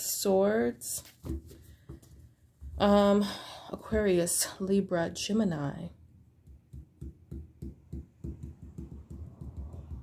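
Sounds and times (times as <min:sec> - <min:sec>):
fingertips tapping on a table: 0:06.4 - 0:10.0.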